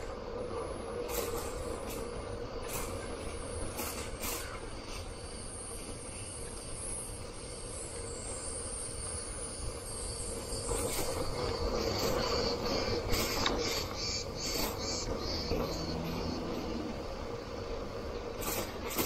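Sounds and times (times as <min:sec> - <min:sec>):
faint steady whine: 0:00.0 - 0:18.4.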